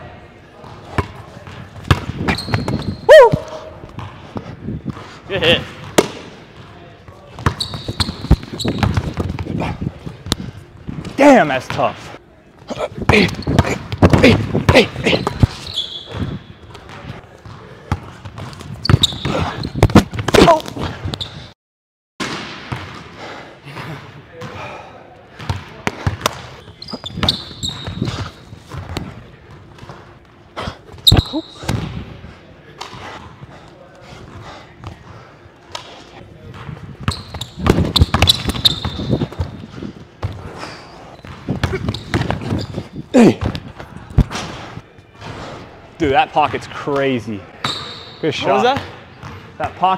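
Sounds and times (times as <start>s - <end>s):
sneakers squeaking: 0.6s - 21.5s, 23.7s - 32.2s, 34.2s - 45.4s, 47.5s - 49.6s.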